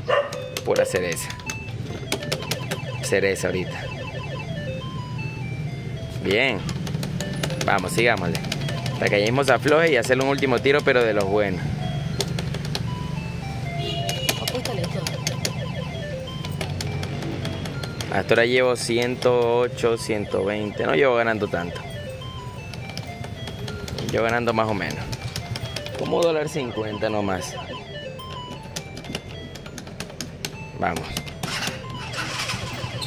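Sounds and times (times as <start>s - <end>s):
electronic beeping tune: 1.0s - 33.0s
rapid clicks: 6.6s - 11.5s.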